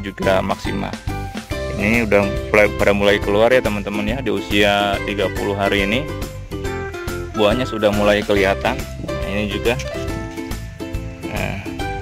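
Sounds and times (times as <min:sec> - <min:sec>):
light acoustic music: 0:00.0 - 0:12.0.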